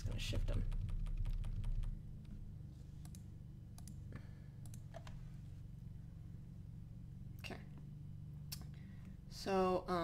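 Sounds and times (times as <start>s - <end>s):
low steady hum: 0.0s - 10.0s
computer mouse clicks: 3.0s - 4.0s, 4.6s - 5.2s.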